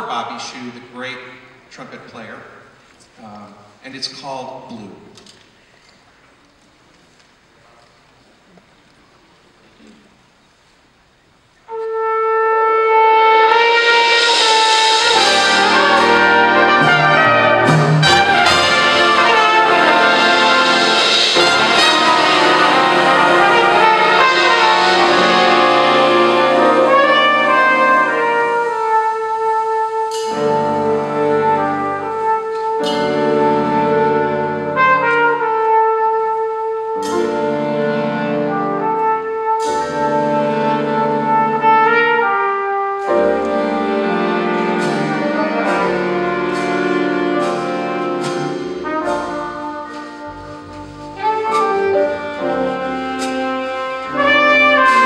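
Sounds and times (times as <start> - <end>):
jazz band playing ballad: 11.7 - 55.0
trumpet long notes: 11.7 - 55.0.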